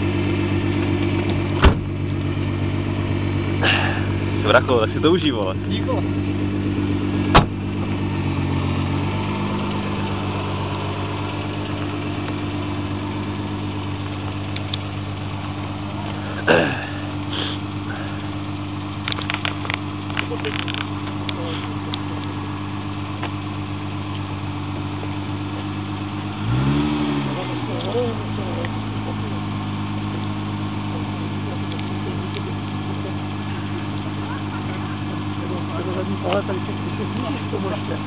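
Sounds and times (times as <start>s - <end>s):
car engine idling: 0.0s - 38.0s.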